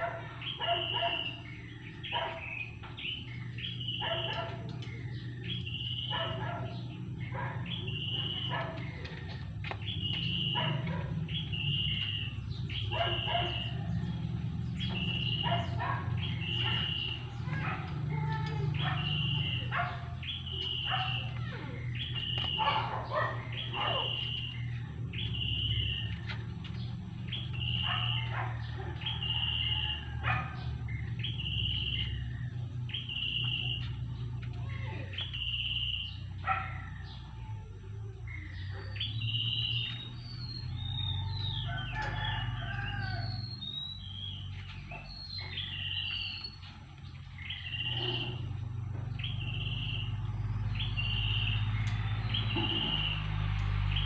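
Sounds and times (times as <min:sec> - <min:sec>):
birds chirping: 0:00.0 - 0:54.0.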